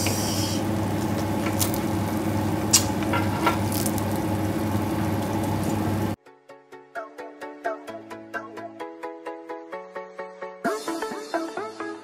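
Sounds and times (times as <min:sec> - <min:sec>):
chicken sizzling: 0:00.0 - 0:06.2
steady low hum: 0:00.0 - 0:06.2.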